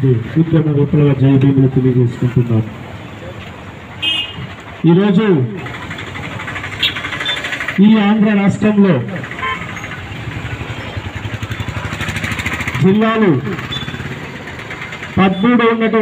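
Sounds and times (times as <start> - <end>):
motorcycle engine running: 3.6 - 16.0.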